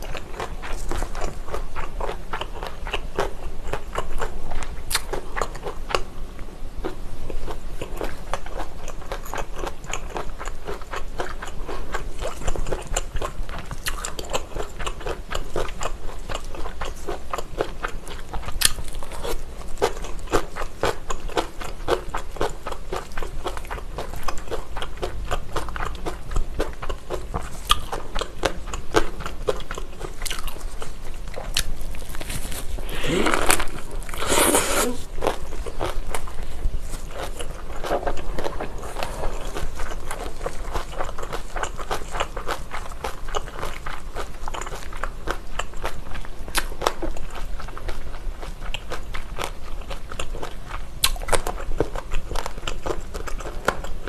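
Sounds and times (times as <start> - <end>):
food crunching and chewing: 0.0 - 54.0
wet mouth clicks: 32.7 - 36.0.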